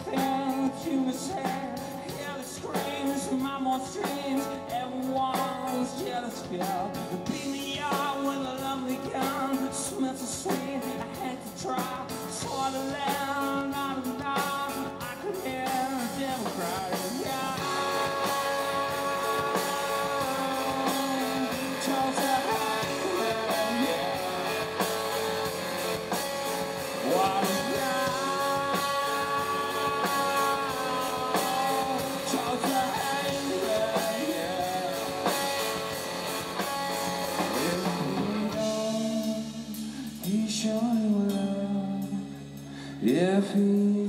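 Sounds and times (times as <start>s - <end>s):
bass guitar: 0.0s - 44.0s
drums: 0.0s - 44.0s
electric guitar: 0.0s - 44.0s.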